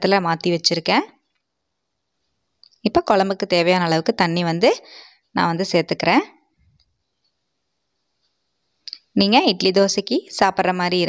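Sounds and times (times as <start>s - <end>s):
person narrating: 0.0s - 1.2s, 2.8s - 6.5s, 8.9s - 11.0s.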